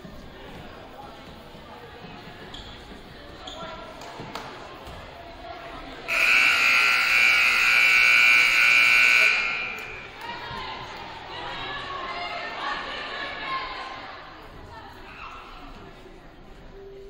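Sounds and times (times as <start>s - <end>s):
scoreboard horn blast: 6.1s - 10.0s.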